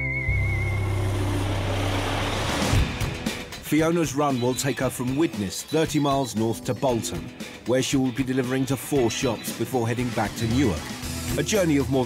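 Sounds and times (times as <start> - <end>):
background music: 0.0 - 12.0
lorry driving past: 0.3 - 3.6.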